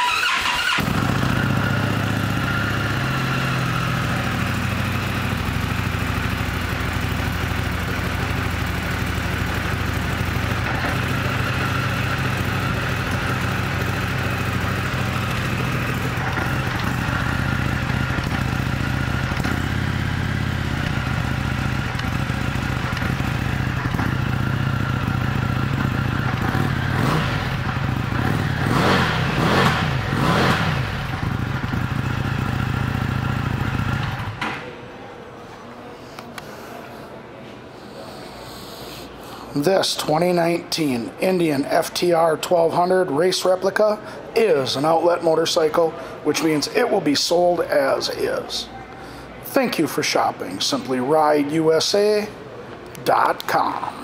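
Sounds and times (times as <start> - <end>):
engine revving: 0.0 - 34.4
motorcycle engine idling: 0.5 - 34.6.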